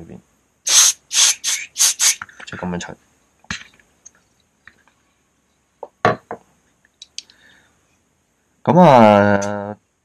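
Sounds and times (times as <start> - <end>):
aerosol spray hissing: 0.7 - 2.2.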